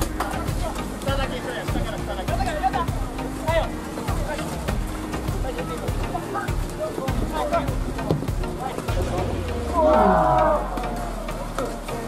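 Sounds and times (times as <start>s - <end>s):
music: 0.0s - 12.0s
people shouting: 8.9s - 11.8s.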